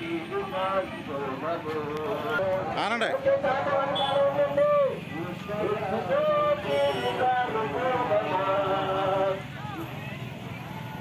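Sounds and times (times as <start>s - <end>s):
marchers chanting: 0.0s - 9.5s
vehicle engine running: 0.0s - 11.0s.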